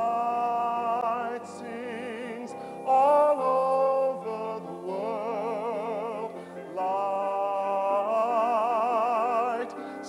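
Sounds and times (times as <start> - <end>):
person singing long notes: 0.0 - 10.0.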